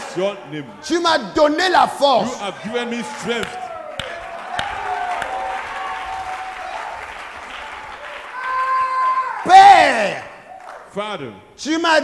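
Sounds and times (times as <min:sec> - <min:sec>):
congregation clapping: 0:03.0 - 0:11.0.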